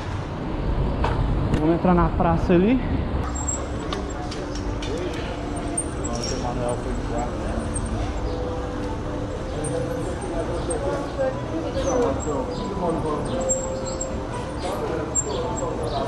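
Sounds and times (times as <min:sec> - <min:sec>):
indistinct voices of passers-by: 0:00.0 - 0:16.0.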